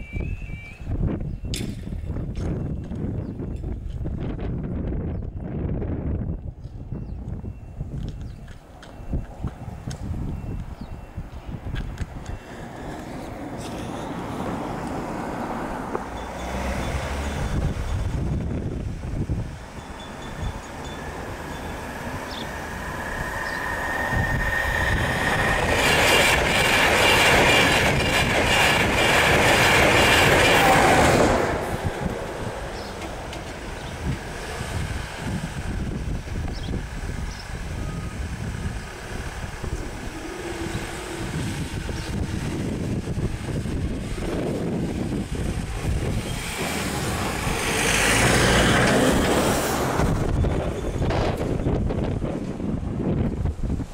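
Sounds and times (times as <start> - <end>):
high ringing of wheels on rail: 0.0 - 4.1, 4.9 - 53.9
train passing at speed: 5.6 - 53.9.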